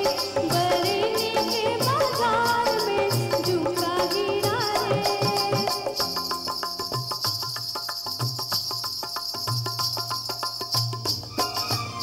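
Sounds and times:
jingling bells in quick rhythm: 0:00.0 - 0:12.0.

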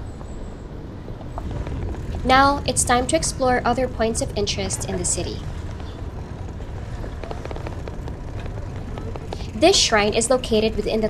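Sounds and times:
bicycle tyre noise on pavement: 0:00.0 - 0:11.0
wind buffeting microphone: 0:00.0 - 0:11.0.

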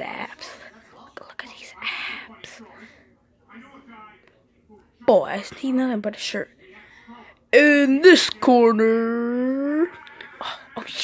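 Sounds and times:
soft whispering: 0:00.0 - 0:03.2.

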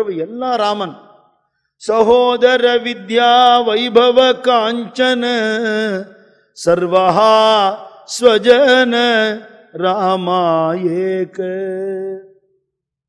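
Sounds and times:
man singing: 0:01.8 - 0:12.4.

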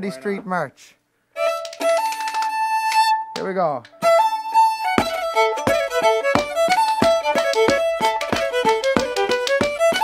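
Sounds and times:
fiddle playing: 0:00.0 - 0:00.5, 0:01.3 - 0:10.0.

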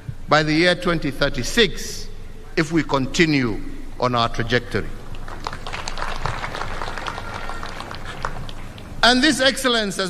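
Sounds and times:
crowd applauding: 0:05.0 - 0:09.0.

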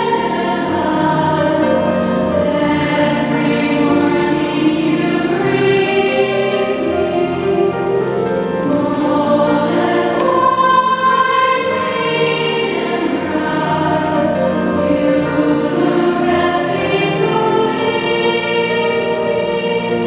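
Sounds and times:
choir singing held chords: 0:00.0 - 0:20.0.

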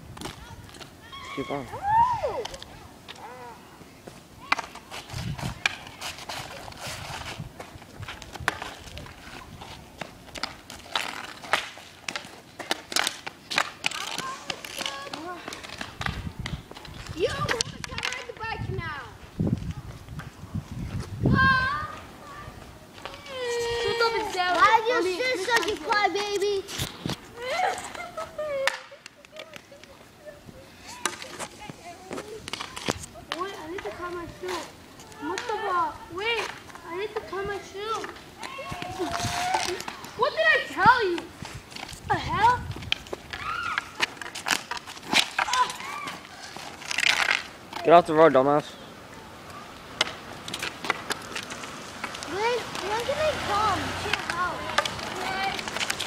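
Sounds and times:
hockey sticks and ball clacking: 0:04.4 - 0:18.6, 0:23.0 - 0:27.2, 0:27.8 - 0:30.0, 0:30.8 - 0:47.9, 0:49.4 - 0:56.0
hockey stick striking ball: 0:54.0 - 0:56.0.

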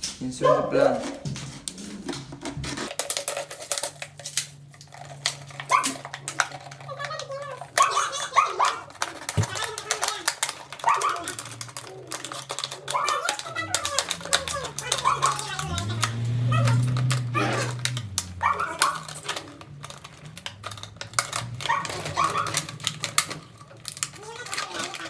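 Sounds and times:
plastic bottle crackling: 0:02.0 - 0:25.0.

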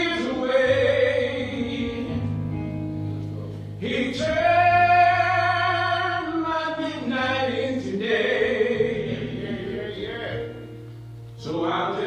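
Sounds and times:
person singing slow song: 0:00.0 - 0:02.7, 0:03.7 - 0:12.0.

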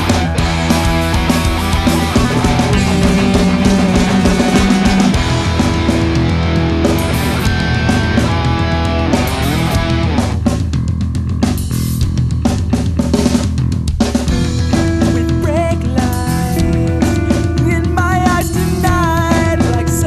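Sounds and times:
distorted electric guitars: 0:00.0 - 0:20.0
driving drum kit: 0:00.0 - 0:20.0.

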